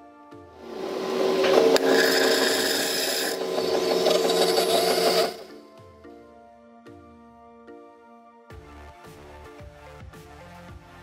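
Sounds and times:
coffee running into cup: 0.6s - 5.5s
coffee machine grinding beans: 0.6s - 5.6s.

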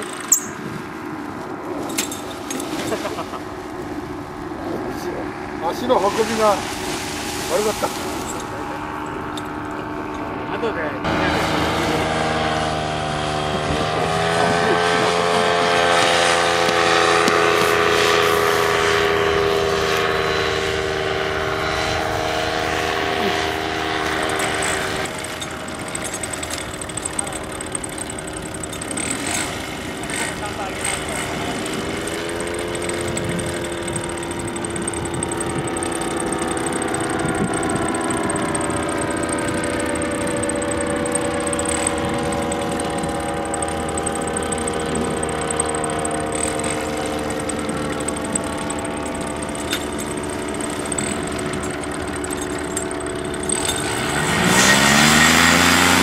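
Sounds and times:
paramotor engine droning: 0.0s - 56.0s.

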